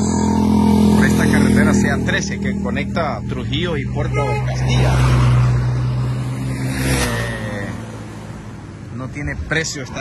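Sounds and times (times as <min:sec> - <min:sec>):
vehicle engine passing by: 0:00.0 - 0:08.9.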